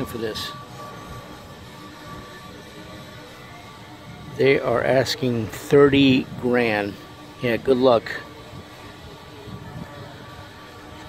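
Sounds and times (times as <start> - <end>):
faint background music: 0.0 - 11.0
thin steady tone: 0.0 - 11.0.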